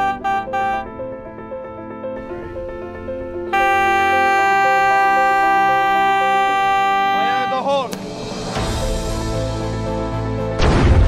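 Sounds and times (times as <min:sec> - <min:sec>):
warning horn blast: 0:00.0 - 0:01.0, 0:03.5 - 0:08.0
background music: 0:00.0 - 0:11.0.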